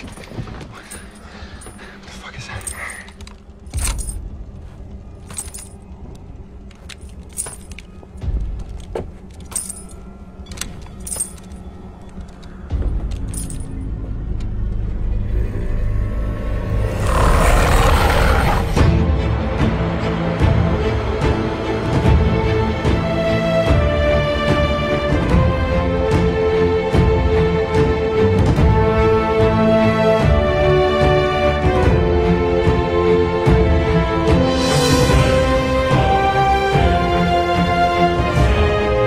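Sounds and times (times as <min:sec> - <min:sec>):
boot footsteps with metallic jingle: 0:00.0 - 0:01.8, 0:02.6 - 0:05.9, 0:06.7 - 0:13.9
low tense music score: 0:00.0 - 0:39.0.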